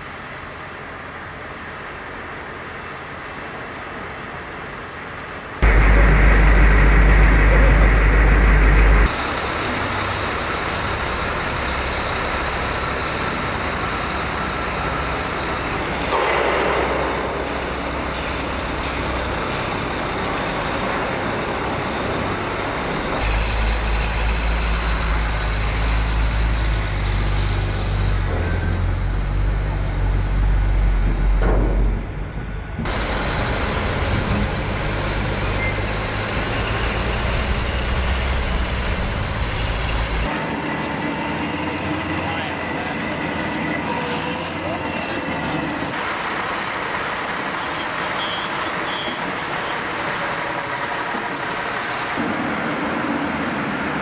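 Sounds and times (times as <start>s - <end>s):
heavy diesel trucks running: 0.0s - 54.0s.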